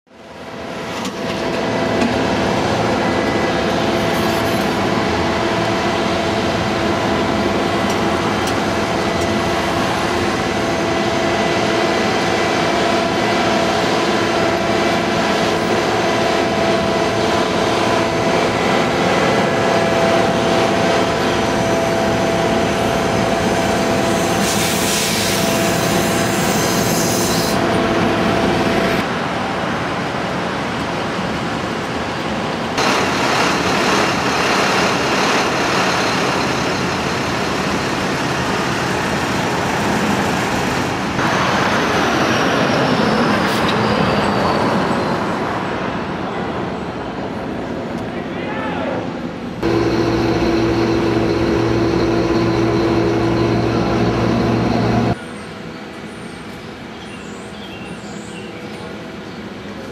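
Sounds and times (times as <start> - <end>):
city street traffic: 0.1 - 59.9.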